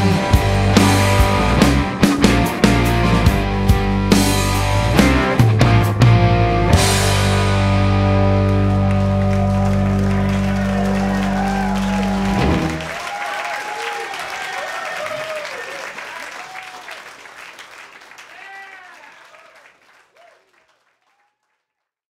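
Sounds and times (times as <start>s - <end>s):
audience applause and cheering: 0.0s - 3.6s, 7.4s - 21.6s
rock band held chord: 0.0s - 13.0s
audience whistling: 8.5s - 21.4s.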